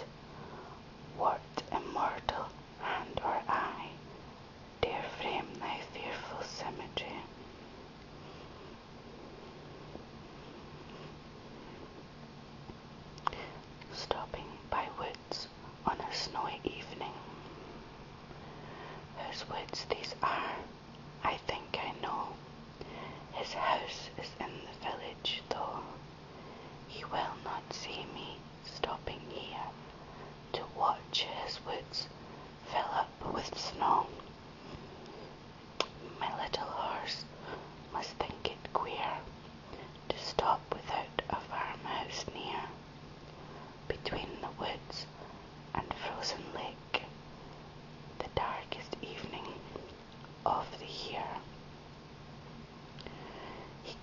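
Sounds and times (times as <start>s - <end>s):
faint low hum: 0.0s - 54.0s
person whispering: 1.1s - 4.0s, 4.8s - 7.3s, 13.2s - 17.3s, 19.2s - 22.4s, 23.3s - 26.0s, 26.9s - 29.8s, 30.5s - 34.2s, 35.9s - 37.4s, 38.0s - 42.8s, 43.9s - 45.2s, 45.8s - 47.1s, 48.2s - 49.8s, 50.5s - 51.5s.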